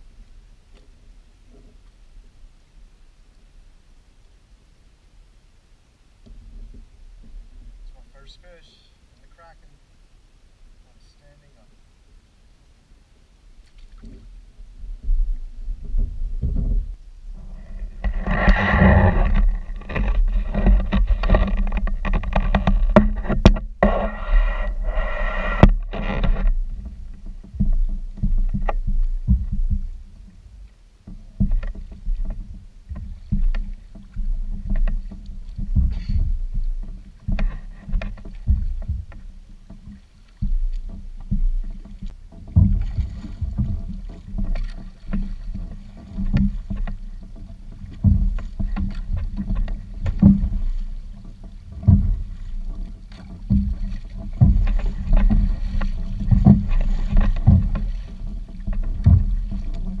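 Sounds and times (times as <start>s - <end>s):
paddle strokes through water: 0.0s - 60.0s
knocks against kayak hull: 18.0s - 29.9s, 31.0s - 60.0s.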